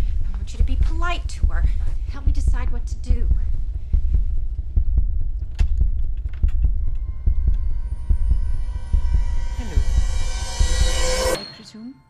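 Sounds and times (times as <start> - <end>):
deep bass beat thudding: 0.0 - 11.4.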